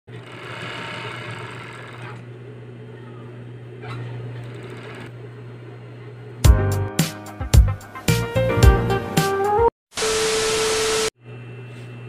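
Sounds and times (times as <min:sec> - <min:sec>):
sewing machine stitching fast: 0:00.1 - 0:02.2.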